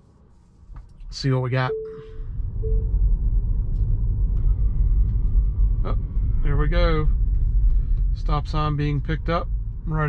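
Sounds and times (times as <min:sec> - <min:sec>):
road and tyre rumble in car cabin: 0:00.0 - 0:10.0.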